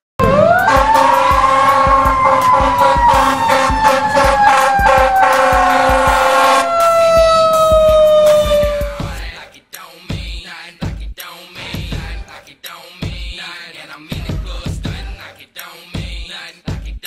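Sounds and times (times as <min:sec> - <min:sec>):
fire engine siren: 0:00.2 - 0:09.2
steady horn blast: 0:00.2 - 0:09.2.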